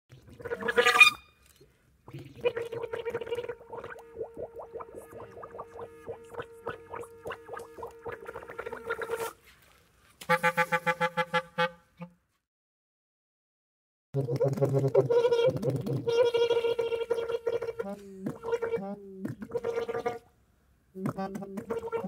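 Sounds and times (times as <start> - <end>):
clarinet gurgling through water: 0.1 - 1.2, 2.0 - 9.4, 14.2 - 20.3, 21.0 - 22.0.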